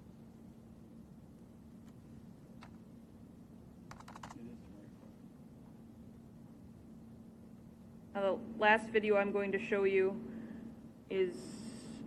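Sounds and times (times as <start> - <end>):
low room hum: 0.0 - 12.0
computer keyboard keystrokes: 3.9 - 4.4.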